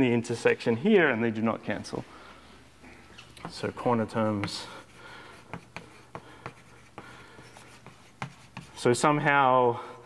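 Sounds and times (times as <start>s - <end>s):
chalk tapping and scratching: 3.4s - 9.0s.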